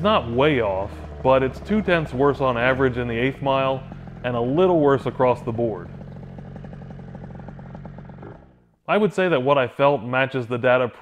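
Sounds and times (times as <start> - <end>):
scooter engine running: 0.0 - 8.8.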